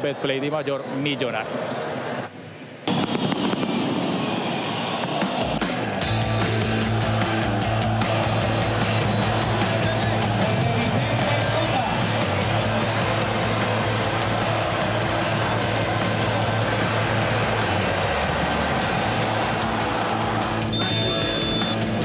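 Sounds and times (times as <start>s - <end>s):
music with steady beat: 5.3s - 22.0s.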